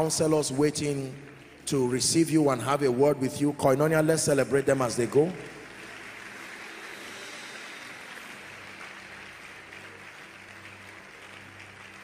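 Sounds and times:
congregation applauding: 0:00.0 - 0:12.0.

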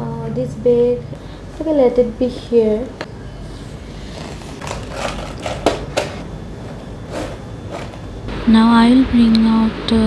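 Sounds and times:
low steady hum: 0:00.0 - 0:10.0.

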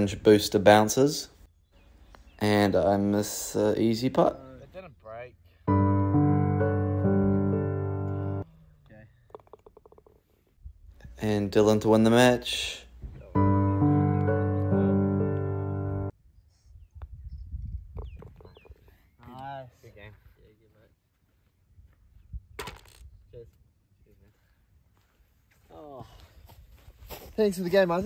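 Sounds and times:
loud held music chord: 0:05.7 - 0:08.4, 0:13.4 - 0:16.1.

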